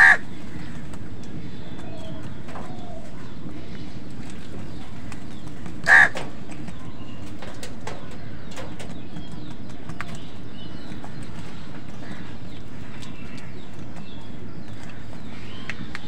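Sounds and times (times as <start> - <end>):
crow cawing: 0.0 - 0.8, 5.8 - 6.2
low background noise: 0.0 - 16.0.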